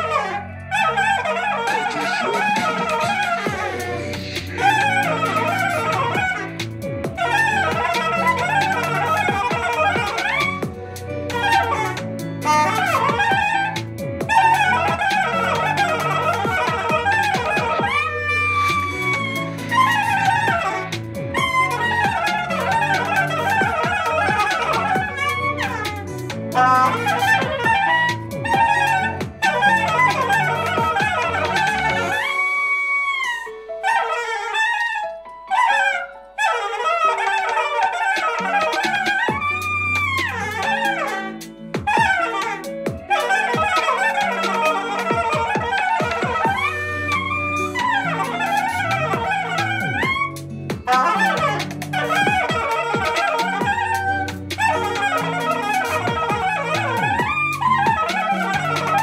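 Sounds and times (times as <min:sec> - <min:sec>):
backing track with bass line: 0:00.0 - 0:32.3, 0:38.4 - 0:59.0
soprano saxophone solo: 0:00.0 - 0:59.0.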